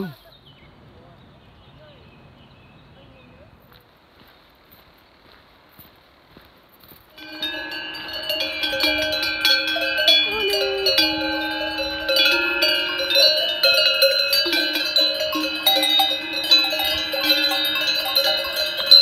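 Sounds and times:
cowbells clanking: 7.1s - 19.0s.

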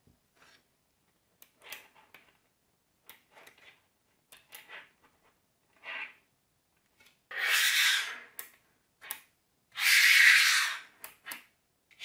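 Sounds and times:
balls rubbing and scraping on table: 4.5s - 6.3s, 7.3s - 8.4s, 9.8s - 12.0s.

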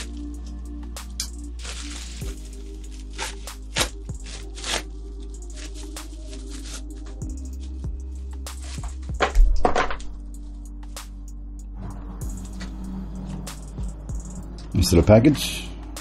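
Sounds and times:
background music: 0.0s - 16.0s
plastic bag crinkling and tearing: 1.6s - 7.2s.

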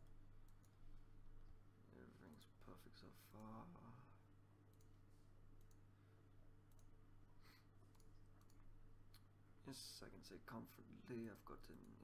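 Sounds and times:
computer mouse clicks: 0.0s - 0.8s, 4.7s - 5.0s, 5.6s - 5.8s, 6.7s - 6.9s, 7.8s - 9.3s
low electrical hum: 0.0s - 12.0s.

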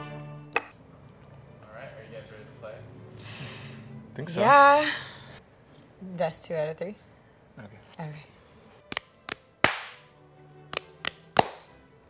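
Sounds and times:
fists smacking into palms: 8.9s - 10.1s, 10.7s - 11.7s.

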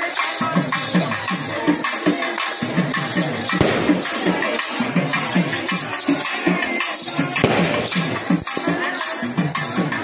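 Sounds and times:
folk singing: 0.0s - 10.0s
jingling percussion: 0.0s - 10.0s
sharp strikes: 3.6s - 4.8s, 7.4s - 8.4s.

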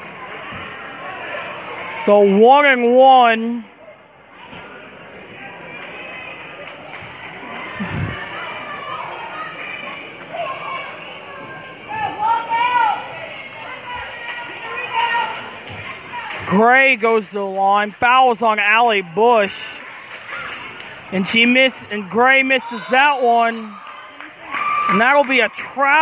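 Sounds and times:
crowd murmur: 3.7s - 16.6s.

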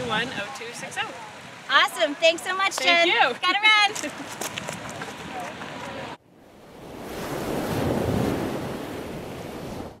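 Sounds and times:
surf on rocky shore: 0.0s - 10.0s.

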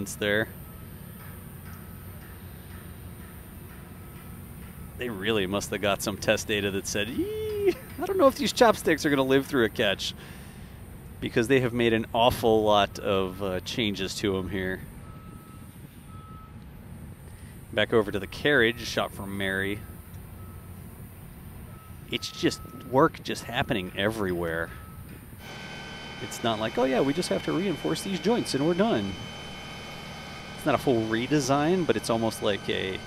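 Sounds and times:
vehicle reversing alarm beeping: 0.0s - 11.0s, 12.6s - 33.0s
low engine rumble: 4.4s - 33.0s.

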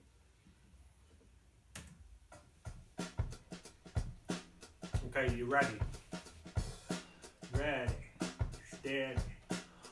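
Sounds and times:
drum kit beat: 2.3s - 9.9s.

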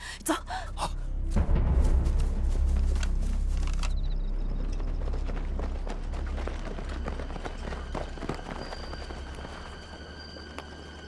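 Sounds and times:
dramatic film score: 0.0s - 11.0s
deep low rumble: 0.9s - 8.8s.

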